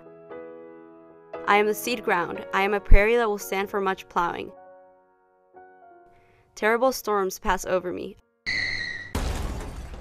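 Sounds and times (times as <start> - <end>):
tyre squeal: 8.5 - 9.2
car crash: 8.5 - 10.0
shattering glass: 9.1 - 10.0.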